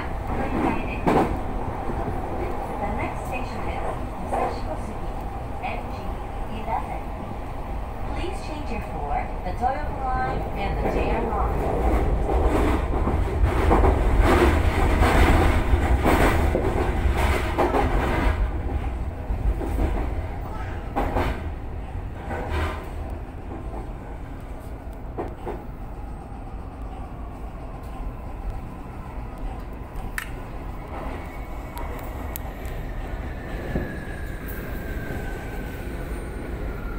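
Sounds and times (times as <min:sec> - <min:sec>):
train passing: 0:00.0 - 0:36.9
train running rumble: 0:00.0 - 0:36.9.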